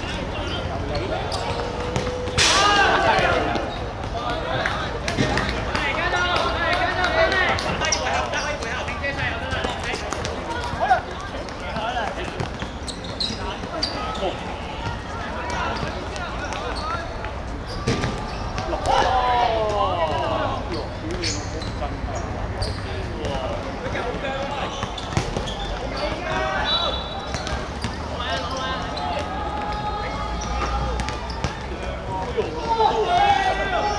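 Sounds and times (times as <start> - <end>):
players shouting: 0.0 - 21.4, 22.9 - 33.9
ball kicked and bouncing: 17.8 - 19.1, 24.8 - 26.5.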